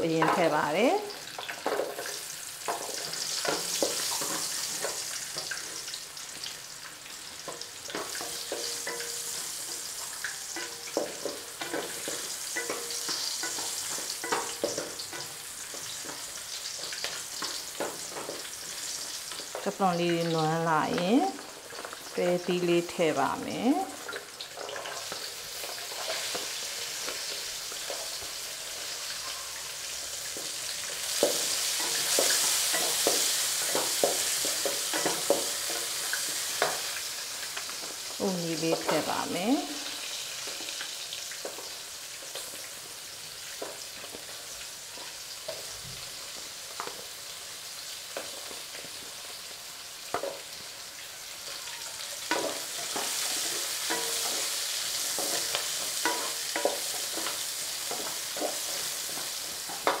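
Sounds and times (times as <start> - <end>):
vegetables sizzling in a pot: 0.0 - 60.0
metal tongs tapping a pot: 7.4 - 16.2, 31.2 - 37.0, 51.5 - 60.0.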